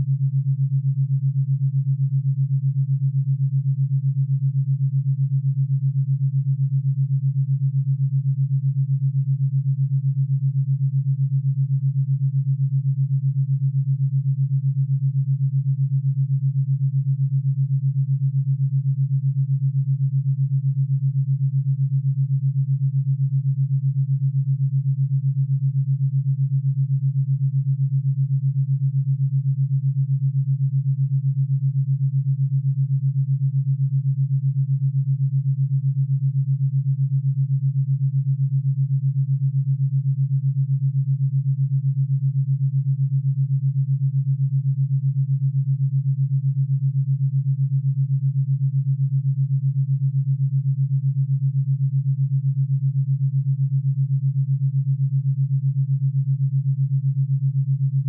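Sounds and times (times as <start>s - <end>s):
low pulsing pure tone: 0.0s - 58.0s.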